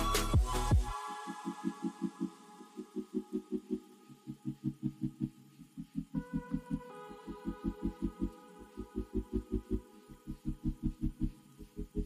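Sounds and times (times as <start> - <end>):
background music with low pulse: 0.0 - 12.0.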